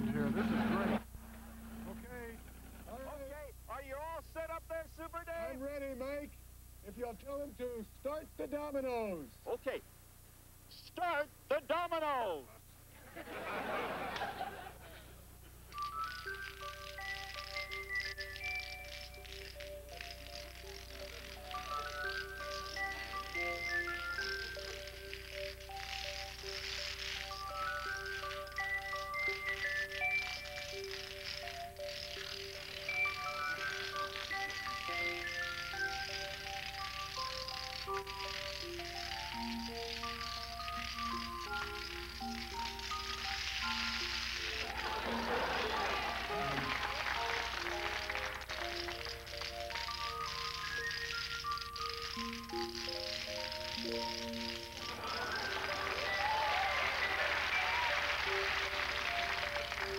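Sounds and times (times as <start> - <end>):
dominoes toppling: 15.8 - 59.9.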